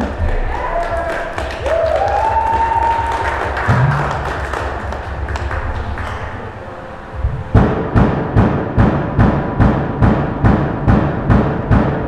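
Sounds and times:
fast kick drum pattern: 0:00.0 - 0:06.0
loud drum hits: 0:02.6 - 0:05.8, 0:07.2 - 0:12.0.

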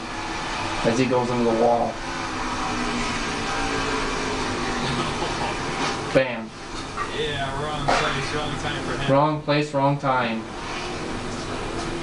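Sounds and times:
race car engine drone: 0:00.0 - 0:12.0.

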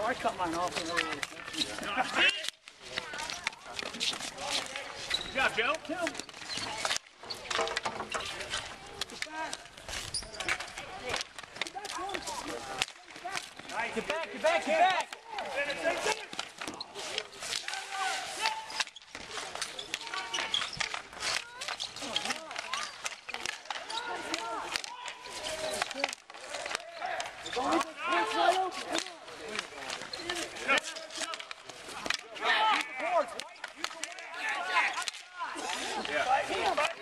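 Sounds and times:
hockey sticks clacking on ball: 0:00.0 - 0:37.0
players calling and chattering: 0:00.0 - 0:37.0.

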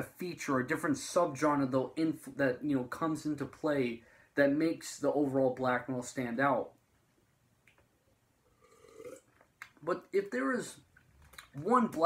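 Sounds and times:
person speaking: 0:00.0 - 0:06.8, 0:09.6 - 0:12.0
person drinking from mug: 0:08.5 - 0:09.4
throaty sound: 0:08.5 - 0:09.4.

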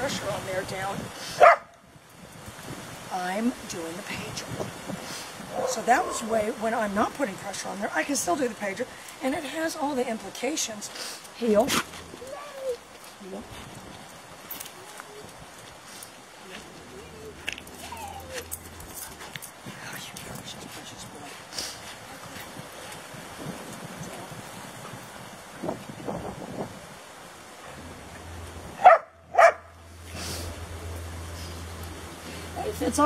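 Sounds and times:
dog barking: 0:01.4 - 0:01.8, 0:05.5 - 0:06.3, 0:28.8 - 0:29.7.

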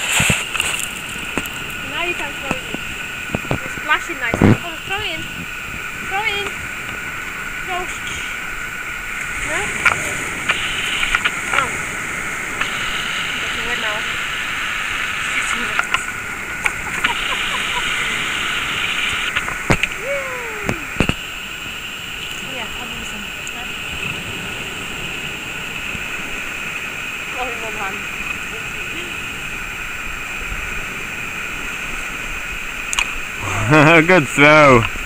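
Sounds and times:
sea water washing on rocks: 0:00.0 - 0:35.0
faint voice-like calls: 0:09.2 - 0:21.4, 0:33.3 - 0:34.9.

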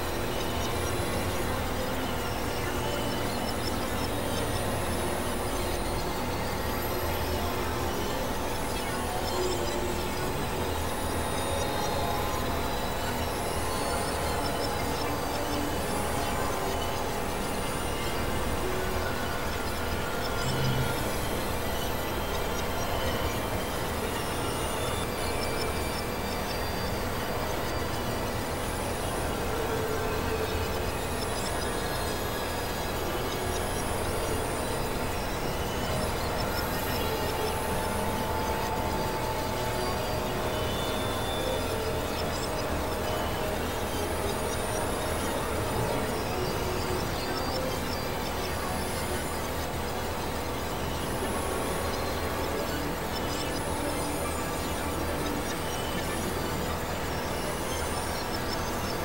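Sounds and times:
electronic noise drones: 0:00.0 - 0:59.0.

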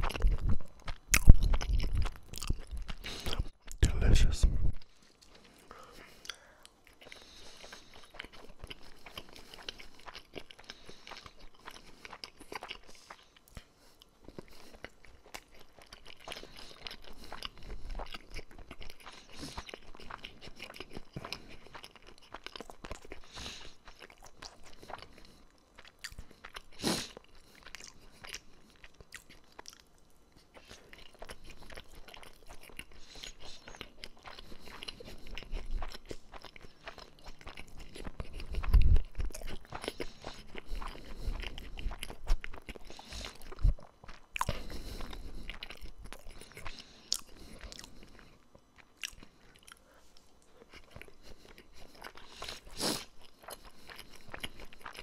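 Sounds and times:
wet chewing clicks: 0:00.0 - 0:04.0, 0:05.2 - 0:49.8, 0:50.4 - 0:55.0.

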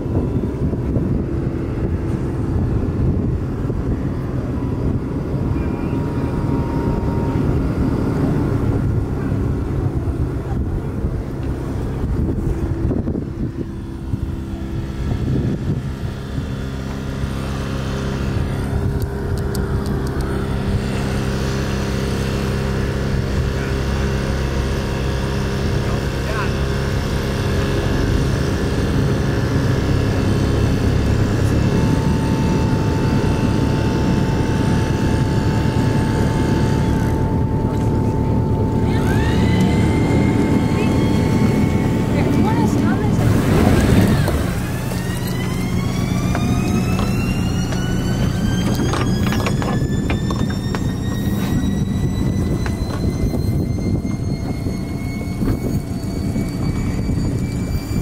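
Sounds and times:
high steady whine: 0:00.0 - 0:58.0
outboard motor running: 0:00.0 - 0:58.0.

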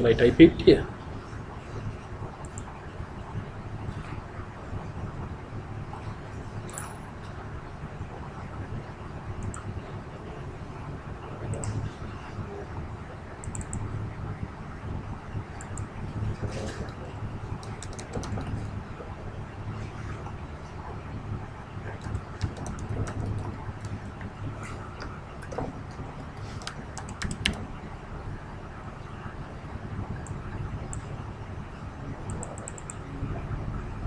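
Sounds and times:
steady low hum: 0:00.0 - 0:34.0
computer keyboard typing: 0:16.8 - 0:18.7, 0:21.9 - 0:24.3, 0:24.9 - 0:27.7, 0:32.3 - 0:33.0.

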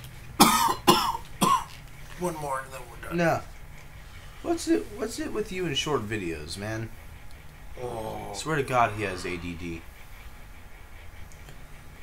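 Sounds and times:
man coughing harshly: 0:00.4 - 0:01.7.

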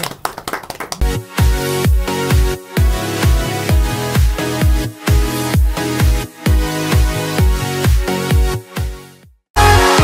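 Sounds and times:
people clapping: 0:00.0 - 0:01.2
music with deep bass beat: 0:01.0 - 0:09.0.

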